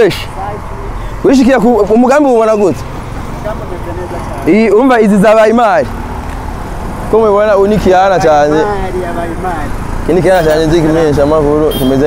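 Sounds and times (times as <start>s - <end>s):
man speaking: 0.0s - 6.0s, 7.0s - 12.0s.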